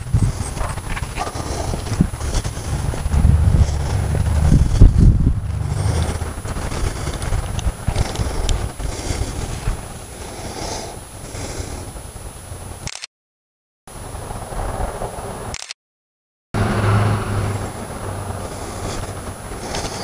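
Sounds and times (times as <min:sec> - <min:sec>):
rustling: 0:00.0 - 0:11.8
wind rumbling on microphone: 0:00.0 - 0:12.9, 0:13.9 - 0:15.6, 0:16.6 - 0:20.0.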